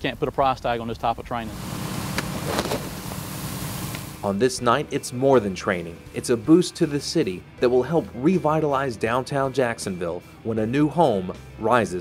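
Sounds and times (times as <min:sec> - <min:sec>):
house fire roaring: 0:01.4 - 0:04.4.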